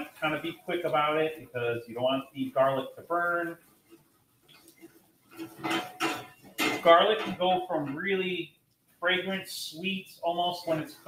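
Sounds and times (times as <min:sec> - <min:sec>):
man talking: 0:00.0 - 0:03.6, 0:06.6 - 0:11.0
spatula scraping a pan: 0:03.6 - 0:07.7.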